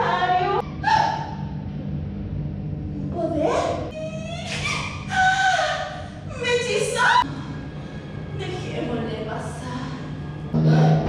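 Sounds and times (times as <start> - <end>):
low hall rumble: 0.0 - 11.0.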